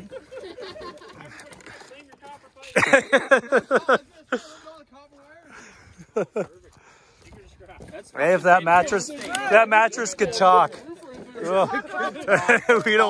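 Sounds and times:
loud laughter: 0.0 - 1.8, 2.7 - 4.5, 11.4 - 13.0
men's voices: 0.0 - 13.0.

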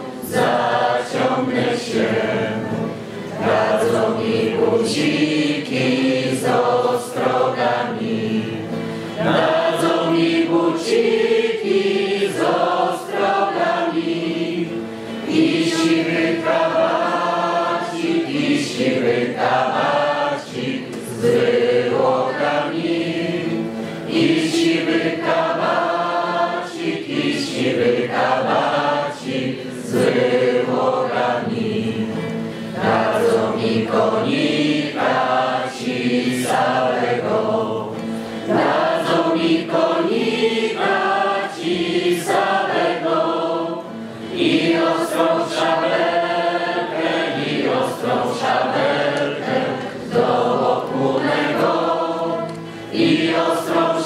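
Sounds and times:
group of voices singing: 0.0 - 54.0.

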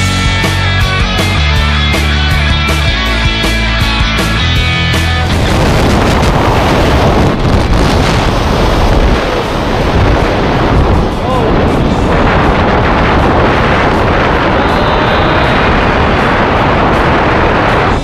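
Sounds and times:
strong wind on microphone: 3.8 - 18.0.

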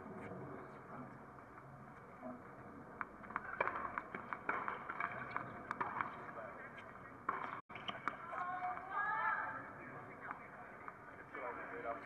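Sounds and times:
tennis ball bouncing on court: 3.0 - 6.2, 7.2 - 9.0.

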